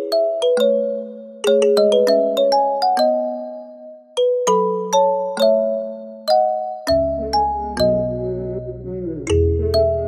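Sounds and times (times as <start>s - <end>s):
bell-like melody: 0.0s - 8.4s
deep bass notes: 6.9s - 10.0s.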